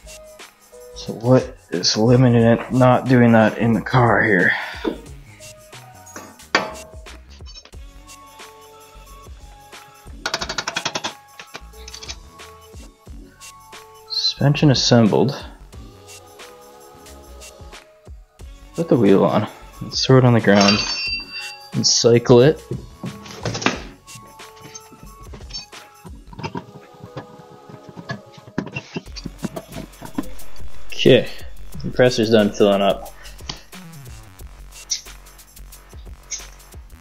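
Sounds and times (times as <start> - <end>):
background music: 0.0 - 37.0
impact wrench rattling: 10.2 - 12.2, 24.6 - 30.3.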